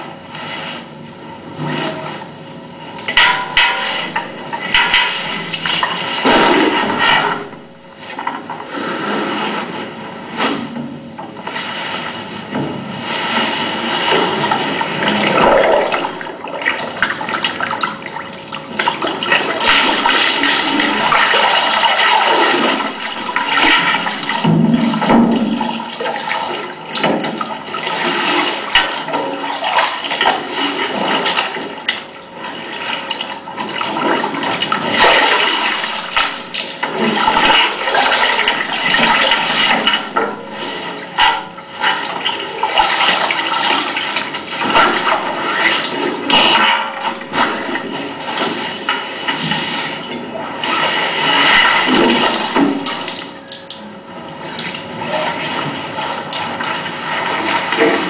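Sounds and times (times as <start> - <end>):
water splashing in a metal drum: 2.9 - 8.7, 10.4 - 58.0.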